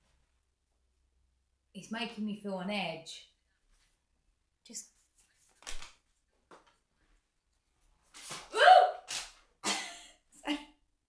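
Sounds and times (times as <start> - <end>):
paper swishing through air: 8.1 - 8.5.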